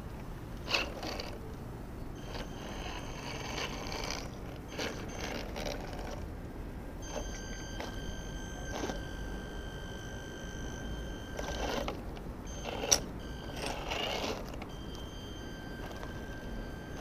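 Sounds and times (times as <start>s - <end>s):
toy car electric motor whining: 0.6s - 1.5s, 2.2s - 6.3s, 7.0s - 17.0s.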